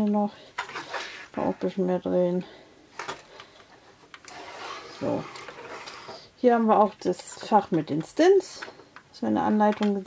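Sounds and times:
light rubbing of plastic parts: 3.0 - 10.0.

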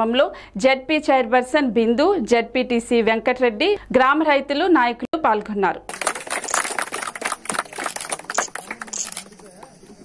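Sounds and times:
people clapping: 5.9 - 10.0.

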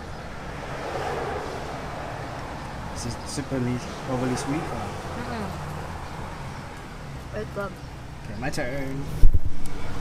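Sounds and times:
vehicle passing: 0.0 - 10.0.

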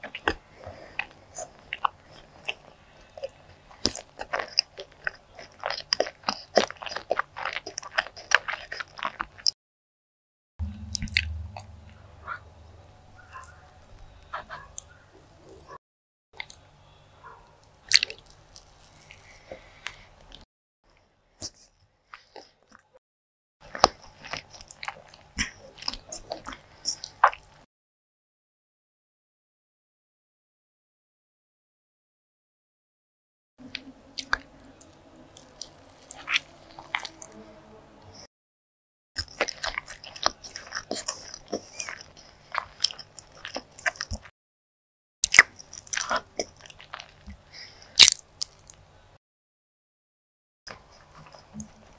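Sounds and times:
close chewing mouth sounds: 0.0 - 9.6, 10.9 - 15.8, 16.4 - 16.7, 17.4 - 20.4, 23.6 - 27.7, 33.6 - 37.4, 39.2 - 44.3, 45.2 - 48.8.

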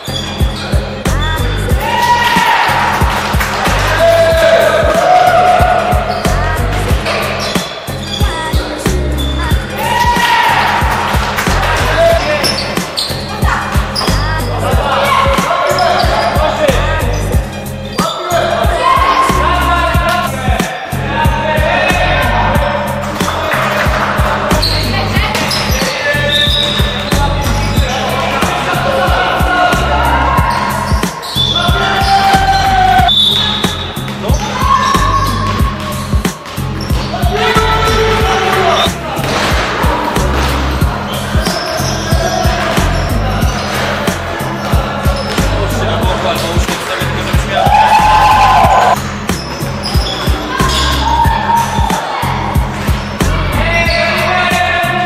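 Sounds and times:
music with heavy bass beat: 0.0 - 55.0
music with steady drum beat: 26.6 - 53.7.

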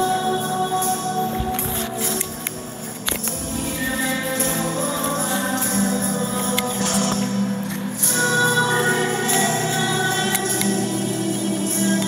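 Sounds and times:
music with choir singing: 0.0 - 12.0.

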